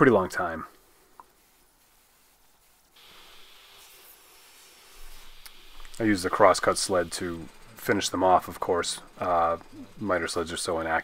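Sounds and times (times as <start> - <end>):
table saw motor hiss and whine: 3.0 - 11.0.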